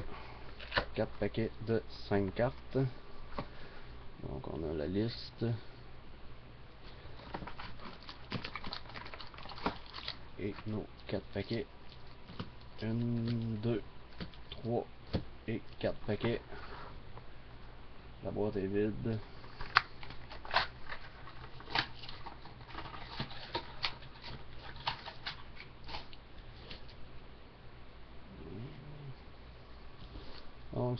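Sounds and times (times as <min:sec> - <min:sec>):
steady low hum: 0:00.0 - 0:30.9
foil packs crinkling and rustling: 0:07.0 - 0:14.5, 0:19.5 - 0:27.0
card packs clicking and rustling: 0:07.2 - 0:10.7.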